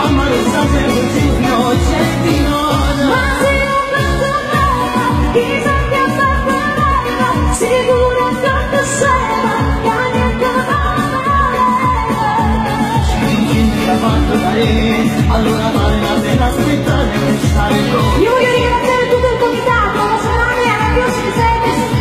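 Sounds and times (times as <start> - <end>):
woman singing with vibrato: 0.0 - 14.8, 17.5 - 22.0
amplified band with kick drum: 0.0 - 22.0.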